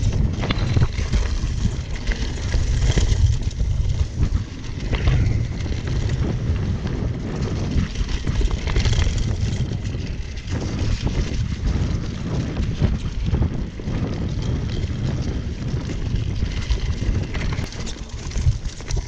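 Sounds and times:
bike clicks and knocks: 0.0 - 19.0
tyres rolling through dry leaves: 0.0 - 19.0
wind buffeting microphone: 0.0 - 19.0.

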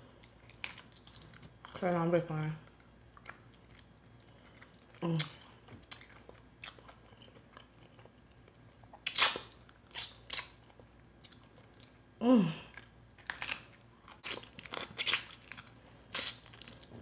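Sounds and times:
person chewing and biting meat: 12.8 - 17.0.

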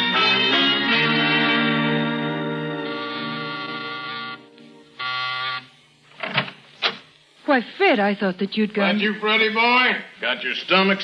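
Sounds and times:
held music chord: 0.0 - 5.1.

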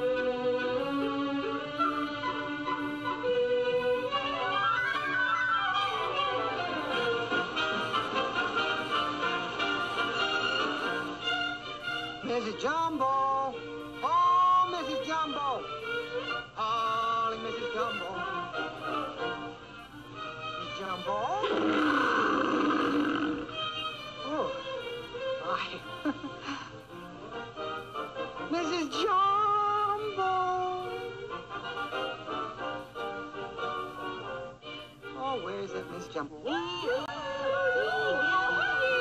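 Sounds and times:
orchestral music with violins: 0.0 - 39.0
rough animal roar: 21.4 - 23.5.

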